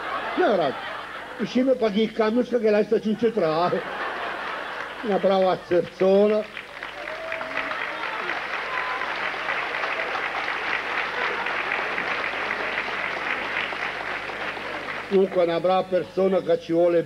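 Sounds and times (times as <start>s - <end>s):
audience applauding: 3.9s - 15.9s.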